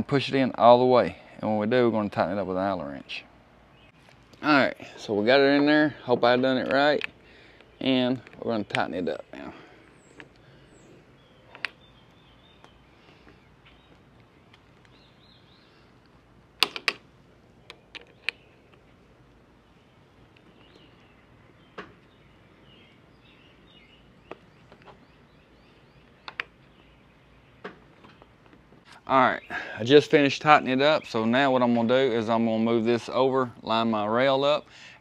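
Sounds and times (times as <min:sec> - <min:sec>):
faint birdsong: 0:00.0 - 0:35.0.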